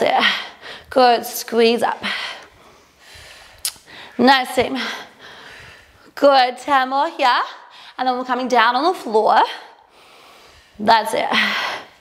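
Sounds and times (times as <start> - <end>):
faint breathing: 2.0 - 6.1, 9.6 - 12.0.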